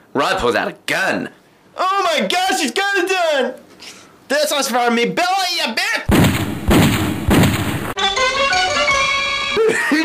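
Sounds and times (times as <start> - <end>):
gunshot with ringing tail: 6.1 - 8.0.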